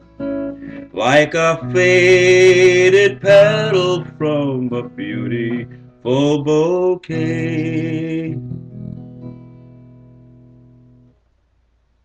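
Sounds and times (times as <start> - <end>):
acoustic guitar chord ringing: 0.0 - 11.1.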